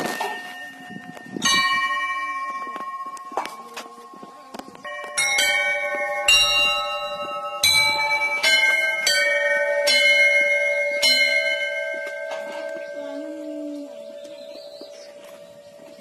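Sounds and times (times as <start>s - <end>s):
metal temple bells ringing: 0.0s - 16.0s.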